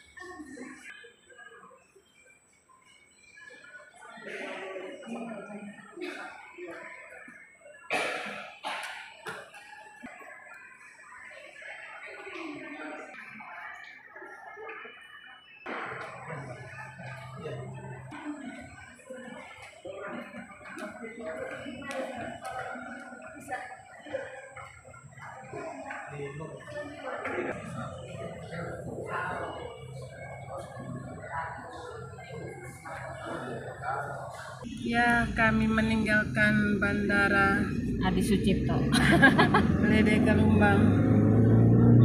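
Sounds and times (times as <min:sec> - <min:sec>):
indistinct voices talking: 0:00.0 - 0:42.0.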